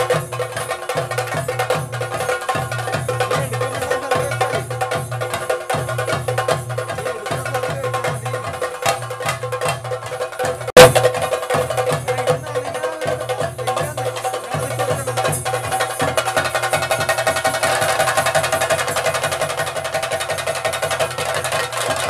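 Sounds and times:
drums beaten in fast rhythm: 0.0s - 22.0s.

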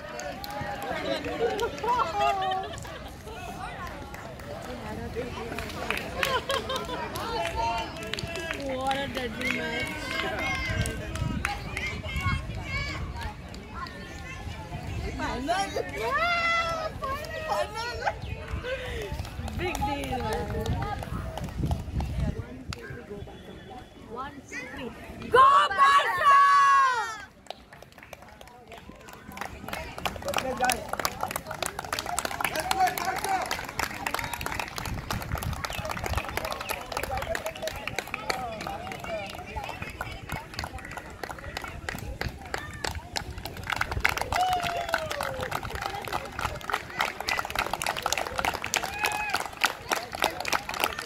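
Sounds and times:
boys calling and chatting: 0.0s - 51.0s
irregular hand claps: 27.4s - 51.0s.

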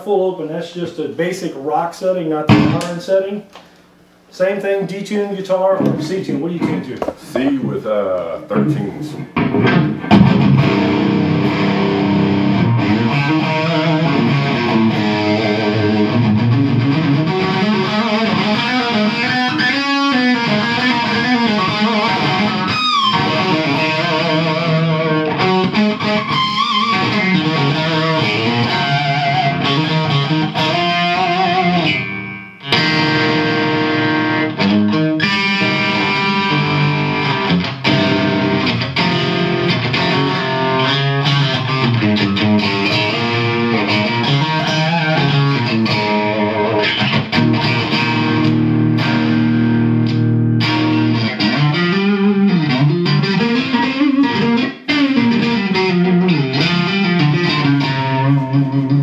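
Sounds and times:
distorted electric guitar riffs: 2.2s - 4.3s, 5.4s - 59.0s.

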